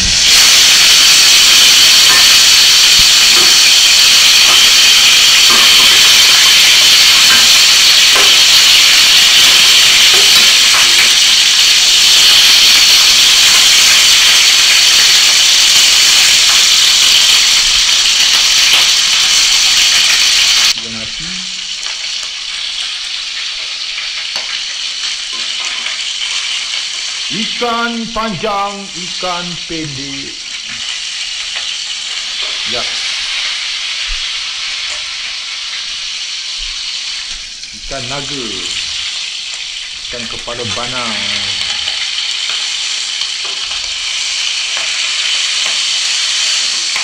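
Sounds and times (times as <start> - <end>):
fish sizzling in hot oil: 0.0 - 47.0.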